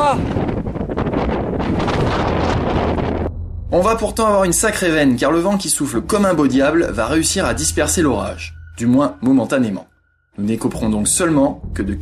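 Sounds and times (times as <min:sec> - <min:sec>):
strong wind blowing: 0:00.0 - 0:09.1.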